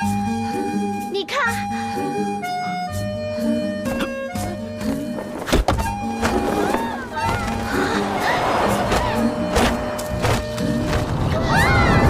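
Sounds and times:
background music: 0.0s - 12.0s
heavy thuds: 8.6s - 11.2s.

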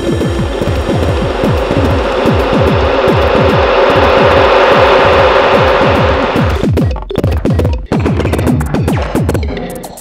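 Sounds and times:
hissy noise wash: 0.0s - 6.6s
synth drone: 0.0s - 6.9s.

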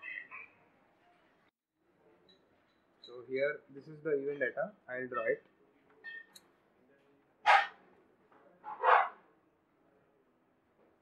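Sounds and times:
dog barking: 7.5s - 7.8s, 8.7s - 9.2s.

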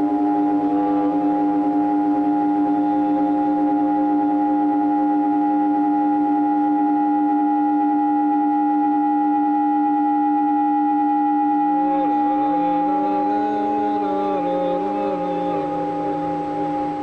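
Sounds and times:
wavering gliding high tones: 0.0s - 5.8s, 11.7s - 17.0s
ambient drone music: 0.0s - 17.0s.

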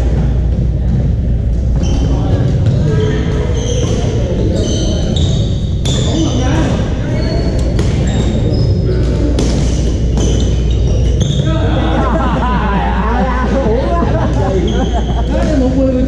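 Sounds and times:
babble of players: 0.0s - 16.0s
shoes squeaking on hardwood court: 1.6s - 11.6s, 14.3s - 15.8s.

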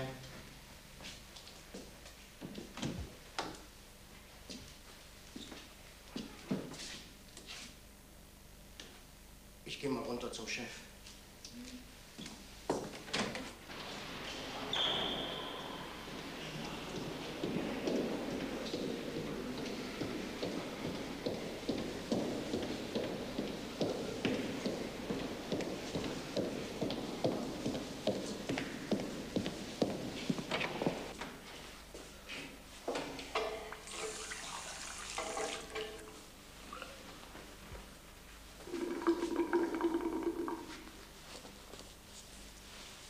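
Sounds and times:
hard-soled footsteps on corridor floor: 0.2s - 7.6s, 12.1s - 14.3s, 16.0s - 33.3s, 41.0s - 43.0s.

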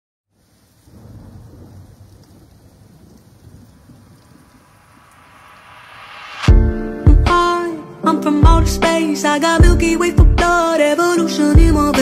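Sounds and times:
rain hiss: 0.3s - 8.0s
low rumbling thunder: 0.7s - 5.5s.

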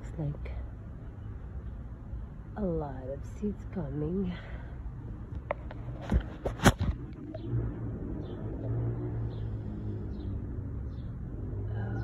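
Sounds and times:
low engine-like hum: 6.9s - 12.0s.

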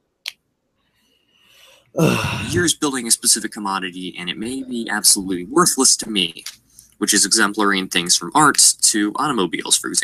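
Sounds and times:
person speaking: 2.0s - 10.0s.

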